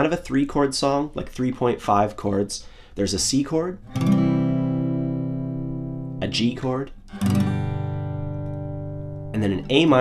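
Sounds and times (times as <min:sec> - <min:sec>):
acoustic guitar chord strummed: 0:03.8 - 0:10.0.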